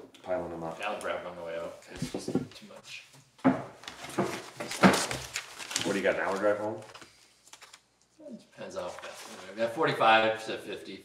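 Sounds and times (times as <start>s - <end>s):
papers being handled: 3.8s - 7.9s, 8.8s - 9.7s.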